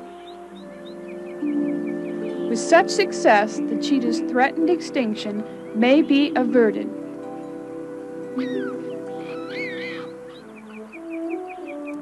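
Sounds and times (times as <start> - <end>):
background music: 0.0 - 12.0
high wavering cheetah call: 8.3 - 11.8.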